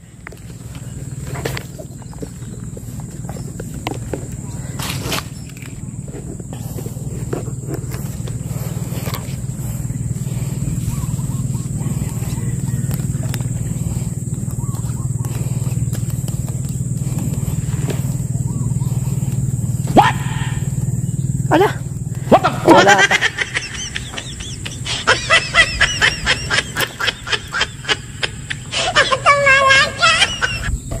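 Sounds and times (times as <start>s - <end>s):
small boat engine running: 0.0s - 31.0s
man laughing heartily: 19.8s - 20.8s, 21.5s - 31.0s.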